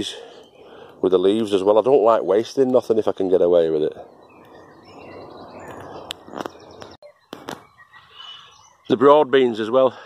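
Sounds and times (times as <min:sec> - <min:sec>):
faint bird chirps: 0:03.8 - 0:09.6.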